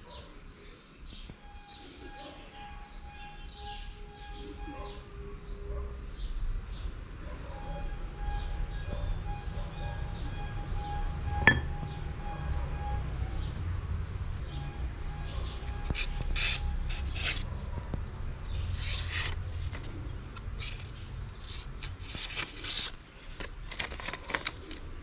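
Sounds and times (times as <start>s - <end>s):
small birds chirping: 0.0s - 7.6s.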